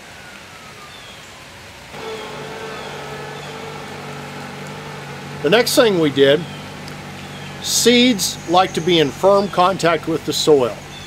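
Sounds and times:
tractor engine running: 0:02.0 - 0:11.0.

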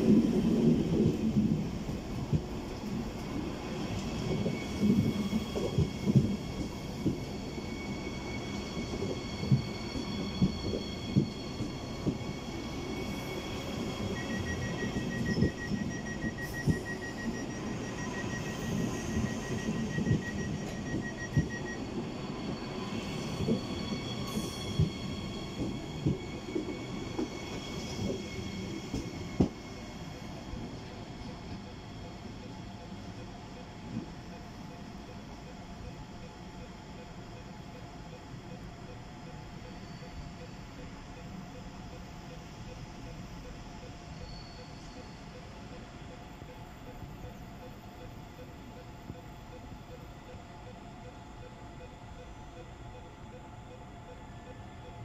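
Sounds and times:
train running rumble: 0:00.0 - 0:50.6.

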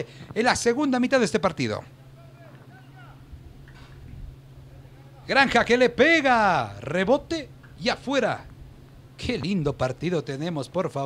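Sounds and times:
steady low hum: 0:00.0 - 0:11.0
distant players calling out: 0:01.9 - 0:03.4.

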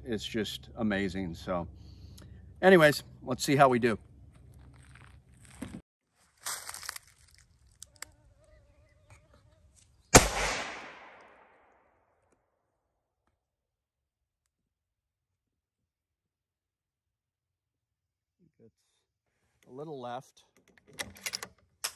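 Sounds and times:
rifle shot: 0:10.1 - 0:11.7.

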